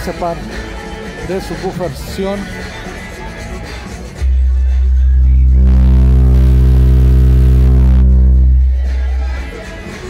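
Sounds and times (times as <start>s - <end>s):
loud low bass tone: 4.2s - 9.0s.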